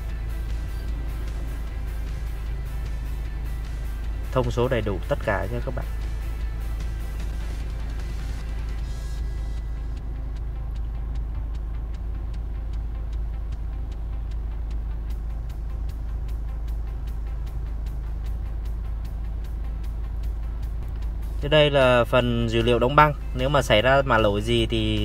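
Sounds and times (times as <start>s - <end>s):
car engine idling: 0.0s - 25.0s
faint engine ticks: 0.0s - 25.0s.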